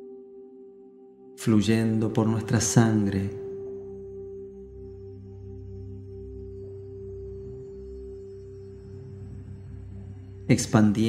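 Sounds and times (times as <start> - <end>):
ambient meditation music: 0.0 - 11.0
deep drone: 0.0 - 11.0.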